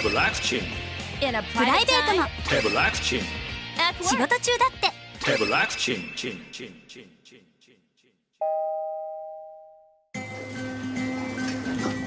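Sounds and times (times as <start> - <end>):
elevator arrival chime: 8.4 - 12.0.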